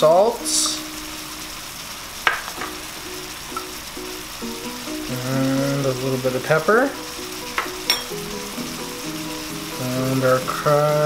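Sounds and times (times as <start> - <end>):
glaze bubbling and sizzling in pan: 0.0 - 11.0.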